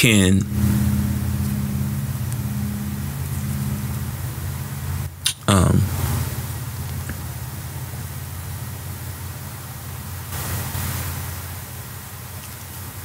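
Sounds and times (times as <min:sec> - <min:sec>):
background hiss: 0:00.0 - 0:13.0
steady low hum: 0:00.0 - 0:13.0.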